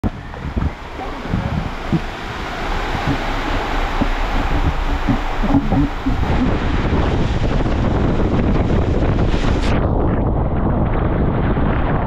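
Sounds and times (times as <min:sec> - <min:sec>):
water rushing down slide: 0:00.0 - 0:09.8
wind buffeting microphone: 0:00.0 - 0:12.0
low thumps from tube: 0:02.9 - 0:09.4.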